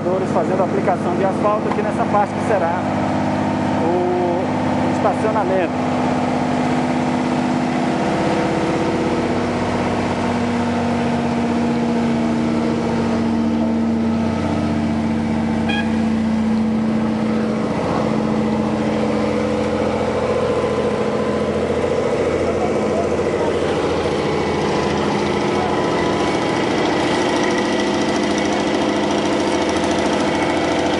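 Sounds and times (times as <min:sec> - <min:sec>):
diesel engine running: 0:00.0 - 0:30.9.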